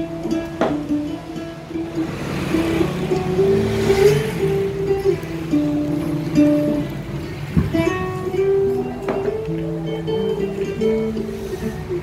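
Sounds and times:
acoustic guitars playing: 0.0 - 12.0.

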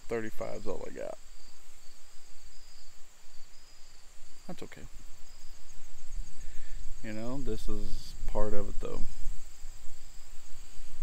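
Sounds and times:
high-pitched insect trill: 0.0 - 11.0
lower pulsing insect trill: 0.0 - 11.0.

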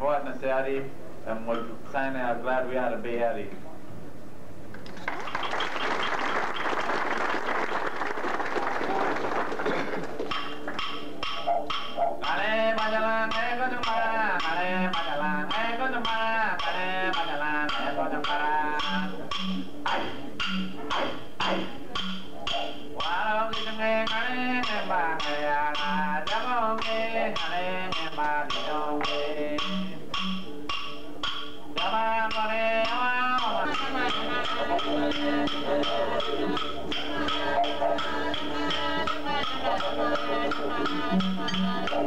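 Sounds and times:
didgeridoo drone: 9.6 - 42.0
sharp percussive clicks: 9.6 - 42.0
person singing: 12.2 - 20.2, 23.0 - 30.2, 31.7 - 42.0.

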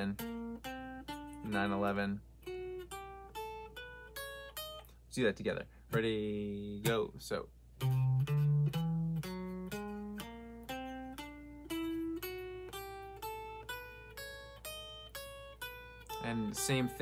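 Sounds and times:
electric guitar single notes: 0.0 - 5.0, 7.8 - 17.0.

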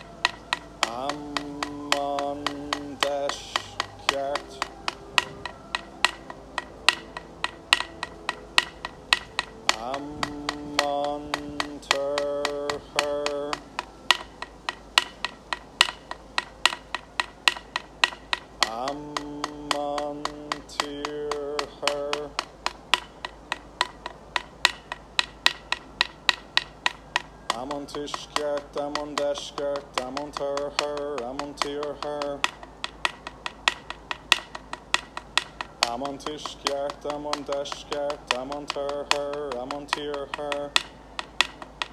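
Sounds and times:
people chanting: 0.0 - 14.4
person singing held notes: 0.0 - 15.3
wooden percussion knocks: 0.0 - 41.9.

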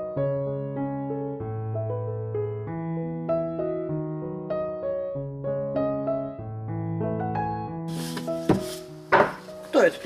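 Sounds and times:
gentle solo piano: 0.0 - 10.0
room sound: 7.9 - 9.8
knock on wooden board: 8.4 - 9.5.

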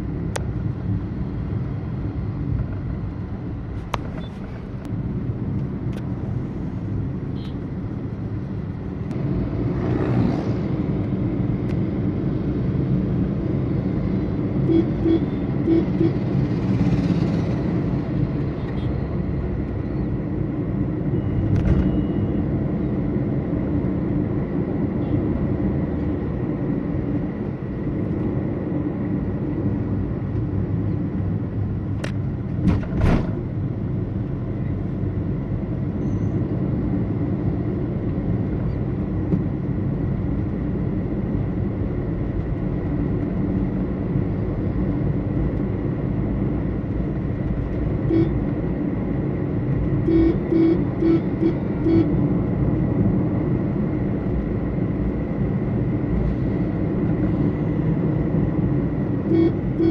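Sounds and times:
vehicle road and engine noise: 0.0 - 59.9.

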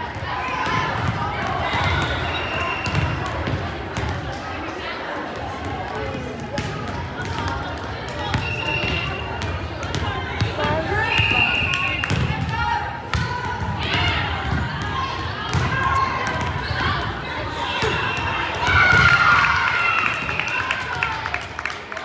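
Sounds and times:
volleyballs bouncing and struck: 0.0 - 4.4, 5.3 - 20.6
echoing crowd chatter: 0.0 - 22.0.

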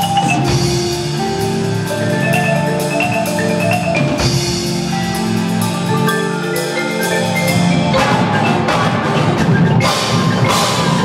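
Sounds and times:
marimbas playing sustained chords: 0.0 - 11.0
percussion ensemble hit: 7.0 - 11.0.

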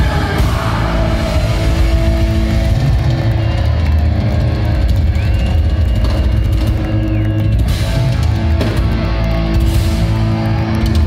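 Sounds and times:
heavy metal band playing: 0.0 - 11.0.

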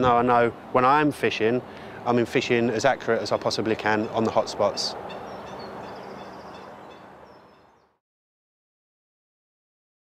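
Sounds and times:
faint bird calls: 3.3 - 8.0.

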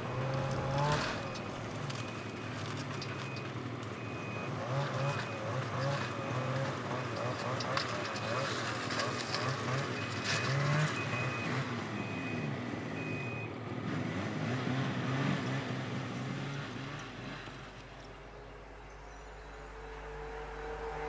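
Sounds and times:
snowmobile engine idling: 0.0 - 11.9.

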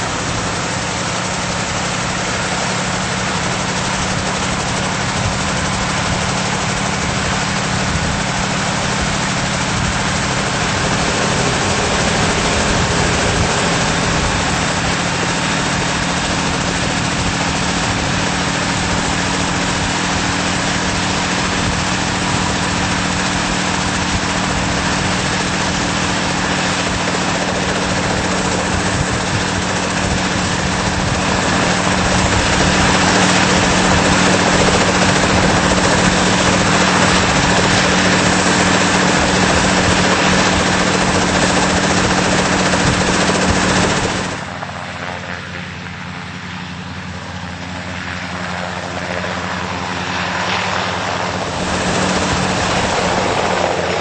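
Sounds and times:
helicopter engine and rotor drone: 0.0 - 54.0.

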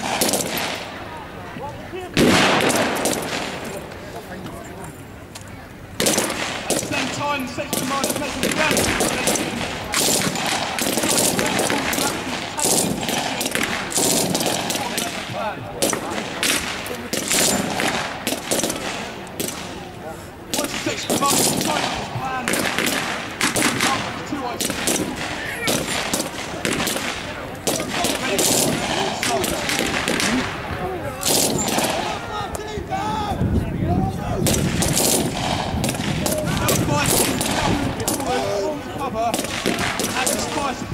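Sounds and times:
rifle fire: 0.0 - 1.0, 2.2 - 3.8, 6.0 - 19.8, 20.5 - 32.2, 34.4 - 38.5, 39.3 - 40.9
people calling: 0.0 - 40.9.

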